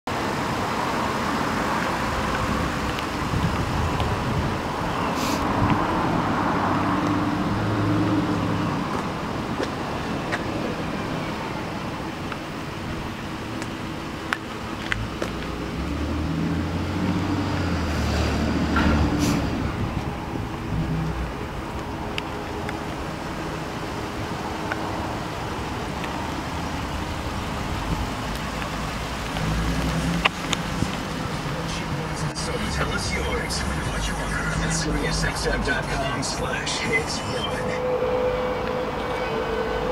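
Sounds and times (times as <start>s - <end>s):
road traffic noise: 0.0s - 39.9s
vehicle engine hum: 0.1s - 39.9s
brief hiss: 5.2s - 5.5s.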